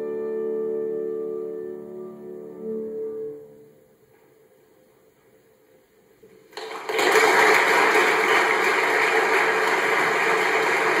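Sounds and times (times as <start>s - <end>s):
audience applauding: 6.5s - 11.0s.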